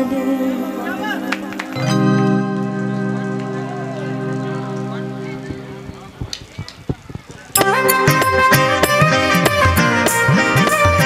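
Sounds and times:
held keyboard chord: 0:00.0 - 0:06.6, 0:07.6 - 0:11.0
drum strokes: 0:02.6 - 0:11.0.

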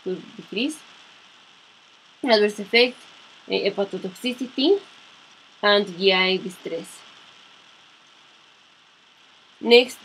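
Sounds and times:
faint recording hiss: 0:00.0 - 0:10.0.

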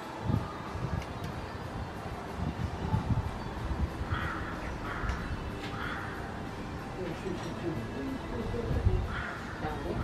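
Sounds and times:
bird harsh calls: 0:03.4 - 0:08.3, 0:09.0 - 0:10.0.

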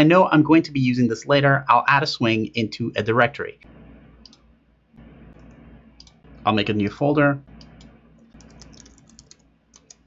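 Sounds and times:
faint keyboard typing: 0:04.2 - 0:06.5, 0:07.5 - 0:10.0.

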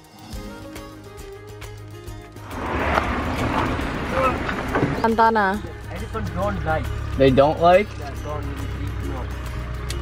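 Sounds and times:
vehicle engine rumble: 0:01.6 - 0:10.0
voices: 0:03.5 - 0:09.4.

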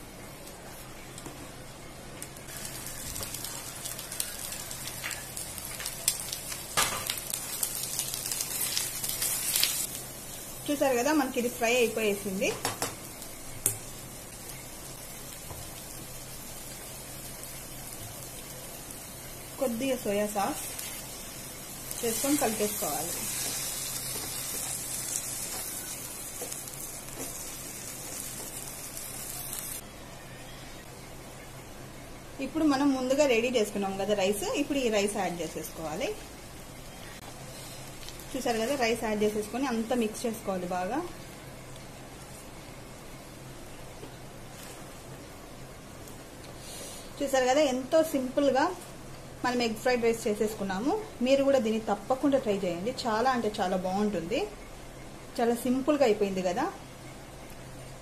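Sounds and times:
food sizzling in frying pan: 0:02.4 - 0:29.8, 0:32.5 - 0:42.9.

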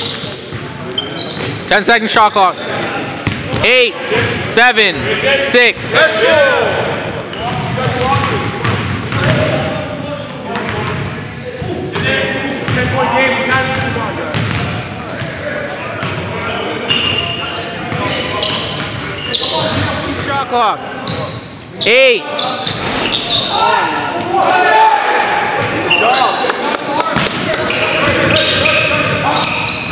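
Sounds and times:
sneaker squeaks: 0:00.0 - 0:05.1, 0:05.8 - 0:12.9, 0:13.6 - 0:29.9
players calling out: 0:00.0 - 0:29.9
basketball bouncing on hardwood floor: 0:07.9 - 0:09.4.

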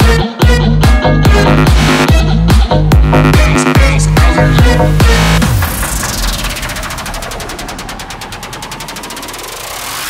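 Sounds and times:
pitch sweep: 0:01.0 - 0:10.0.

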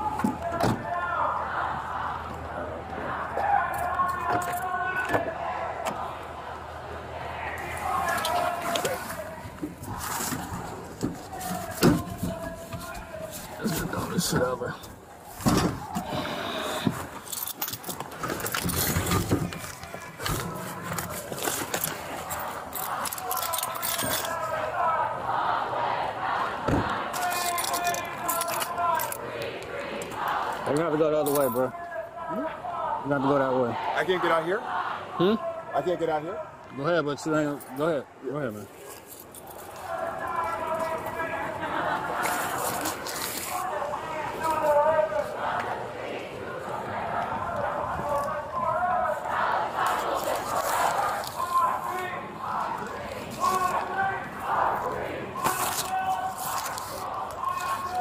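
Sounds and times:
indistinct voices talking: 0:00.0 - 0:58.0.

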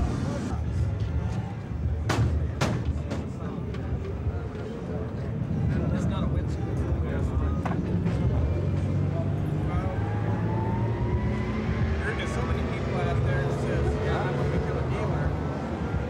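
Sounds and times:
vehicle engines rumbling: 0:00.0 - 0:16.0
engine rising in pitch: 0:08.6 - 0:16.0.

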